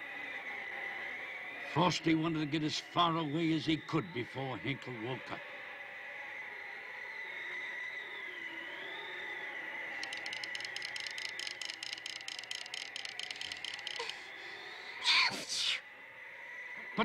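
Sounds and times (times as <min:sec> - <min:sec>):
held high tone: 0:10.0 - 0:14.3
quick even ticking: 0:10.0 - 0:14.3.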